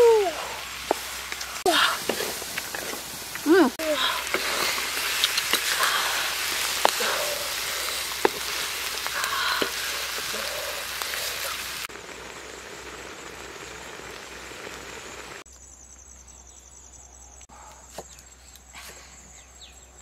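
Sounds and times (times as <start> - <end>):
eggs sizzling in a wok: 0.0 - 15.5
faint steady hiss: 0.0 - 16.2.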